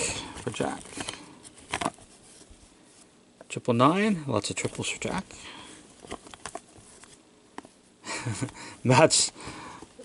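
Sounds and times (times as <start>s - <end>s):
cards rustling in gloved hands: 0.0s - 3.2s, 4.5s - 7.8s.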